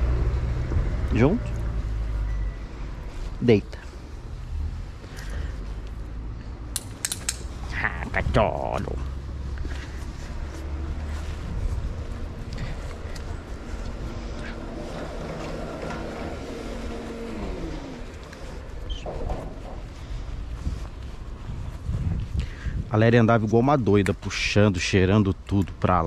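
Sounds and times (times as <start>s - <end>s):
vehicle driving past: 0.0s - 6.7s, 8.8s - 22.0s.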